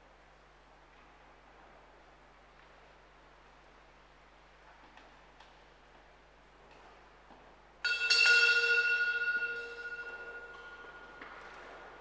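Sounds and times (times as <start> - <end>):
hand-rung bell cluster ringing: 7.9 - 11.5.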